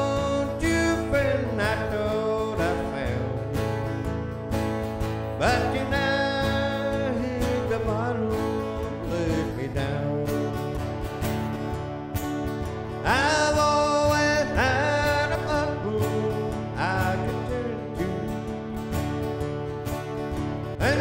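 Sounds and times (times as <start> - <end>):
acoustic guitars strumming: 0.0 - 21.0
bending lead guitar melody: 0.0 - 21.0.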